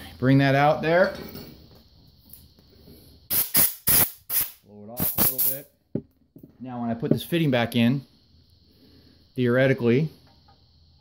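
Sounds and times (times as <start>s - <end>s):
compressed air blow gun hissing: 2.8s - 5.6s.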